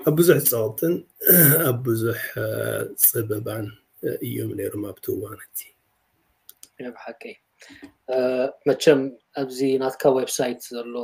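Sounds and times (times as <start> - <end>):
man talking: 0.0 - 5.7, 6.5 - 11.0.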